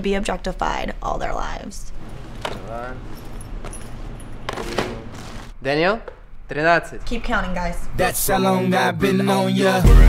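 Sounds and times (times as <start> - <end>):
shopping bags rustling: 1.9 - 5.6.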